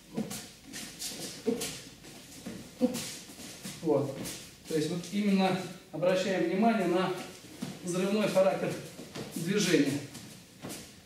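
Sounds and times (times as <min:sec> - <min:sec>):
feet on mat: 0:00.0 - 0:04.8, 0:07.2 - 0:07.9, 0:08.7 - 0:11.0.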